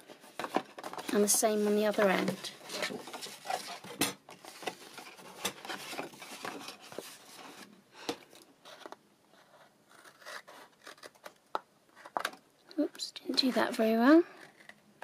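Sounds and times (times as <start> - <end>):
paper rustling: 0.0 - 7.7.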